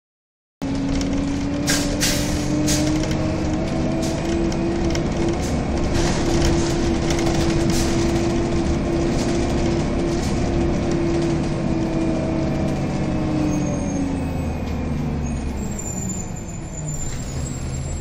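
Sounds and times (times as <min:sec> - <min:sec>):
bus engine whine: 0:00.6 - 0:18.0.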